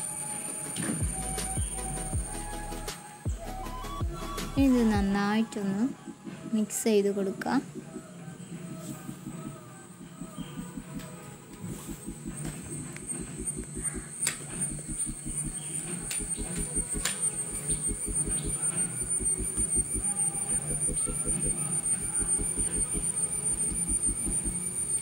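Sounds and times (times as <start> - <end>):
low pulsing: 1.0 - 25.0.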